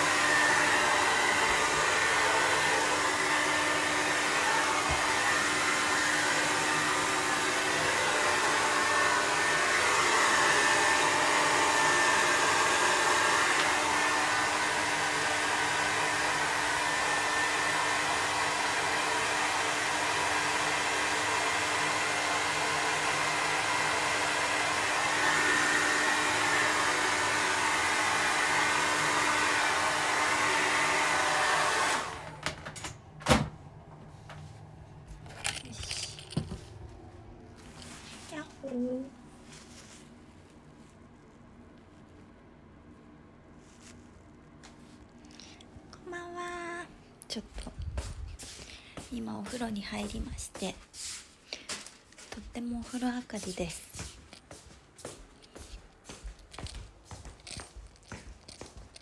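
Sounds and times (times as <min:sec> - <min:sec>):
hair dryer running: 0:00.0 - 0:40.0, 0:47.3 - 0:59.0.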